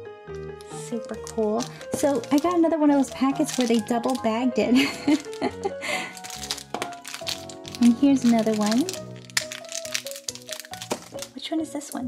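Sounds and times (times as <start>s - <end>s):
background music: 0.0s - 12.0s
plastic packet crackling: 0.4s - 12.0s.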